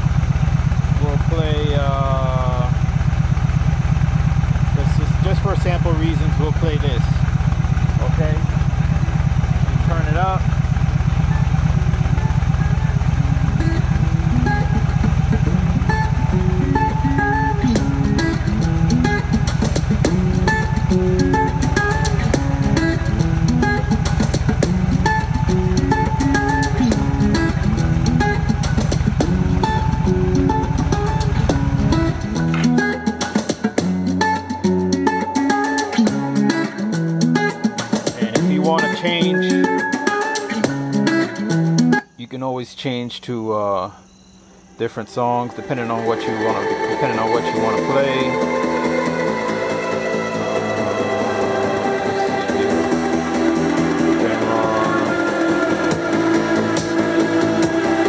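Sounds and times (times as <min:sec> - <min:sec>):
motorcycle engine idling: 0:00.0 - 0:42.2, 0:43.9 - 0:58.0
guitar music through speakers: 0:04.8 - 0:07.1, 0:09.8 - 0:10.4, 0:11.2 - 0:42.2, 0:45.7 - 0:58.0.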